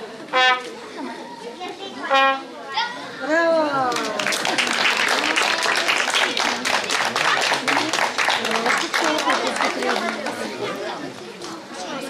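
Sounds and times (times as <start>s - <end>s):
trumpet fanfare: 0.3s - 0.8s, 2.0s - 2.5s
applause: 3.8s - 10.7s.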